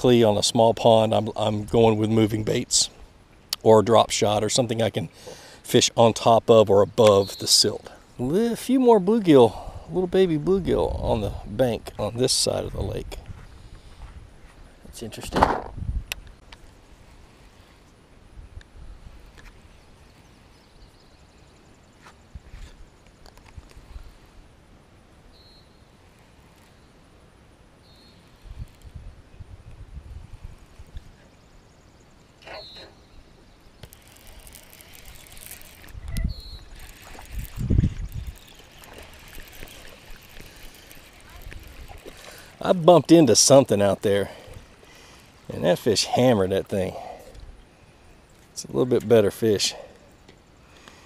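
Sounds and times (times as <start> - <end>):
fishing rod and reel handling: 18.6 - 20.7, 22.0 - 24.4, 26.0 - 27.1, 28.0 - 29.1, 30.3 - 31.2, 33.6 - 47.5
reel clicks: 23.0 - 24.1, 26.0 - 26.8, 28.0 - 29.0, 33.7 - 45.9
hissing splashing water: 33.8 - 46.0.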